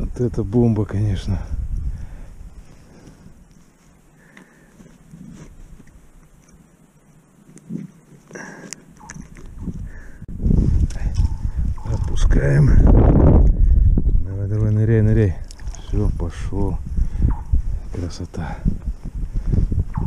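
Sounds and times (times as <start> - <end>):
wind rumble on microphone: 0.0 - 3.5, 9.0 - 20.0.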